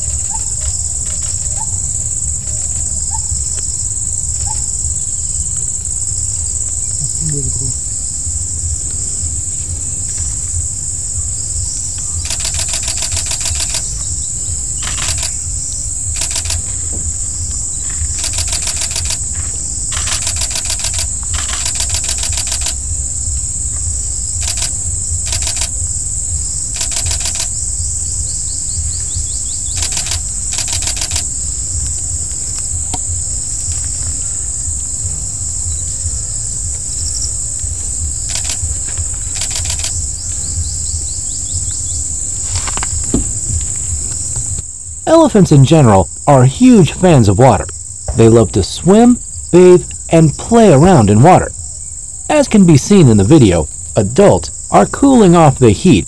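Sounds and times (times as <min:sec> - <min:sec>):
low steady rumble: 0:00.0 - 0:55.7
high-pitched insect drone: 0:00.0 - 0:56.0
rasping pulsed insect bursts: 0:00.0 - 0:56.0.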